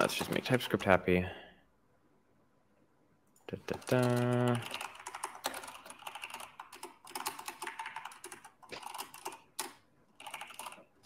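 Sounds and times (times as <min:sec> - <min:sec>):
typing on computer keyboard: 0:03.6 - 0:11.0.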